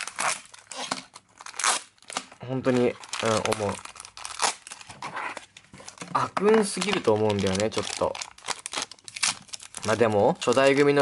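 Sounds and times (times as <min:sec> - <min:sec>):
crinkling plastic packaging: 0:00.0 - 0:11.0.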